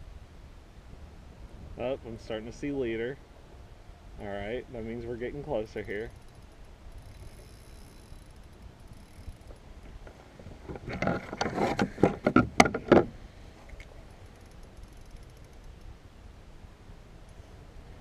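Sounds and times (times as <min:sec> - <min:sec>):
spinning reel cranking: 0:05.8 - 0:09.6, 0:14.2 - 0:15.9
faint fast clicking: 0:06.0 - 0:10.2, 0:13.6 - 0:16.0.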